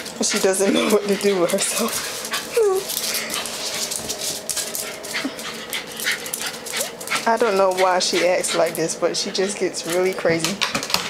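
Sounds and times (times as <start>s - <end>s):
dog claws clicking on concrete: 0.3s - 8.9s, 9.8s - 11.0s.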